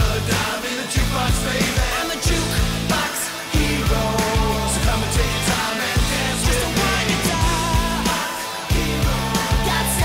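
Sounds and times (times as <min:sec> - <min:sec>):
rock band music: 0:00.0 - 0:10.0.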